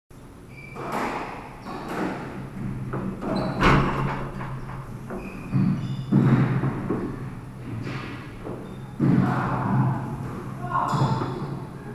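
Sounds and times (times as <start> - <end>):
shoe squeaks on wooden floor: 4.5 - 6.6, 8.6 - 9.0.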